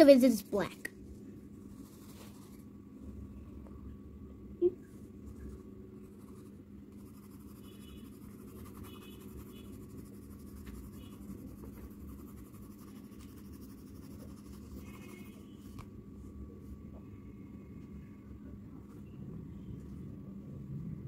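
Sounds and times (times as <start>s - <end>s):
pencil scratching on paper: 1.7s - 2.6s, 5.3s - 15.4s.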